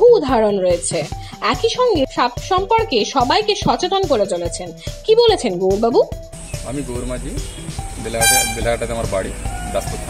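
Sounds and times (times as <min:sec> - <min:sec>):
background music: 0:00.0 - 0:10.0
man talking: 0:06.6 - 0:07.4, 0:08.0 - 0:10.0
loud horn-like blast: 0:08.2 - 0:08.8.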